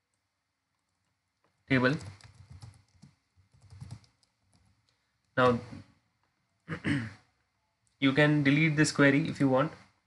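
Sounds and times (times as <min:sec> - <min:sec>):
computer keyboard typing: 0:00.1 - 0:05.4.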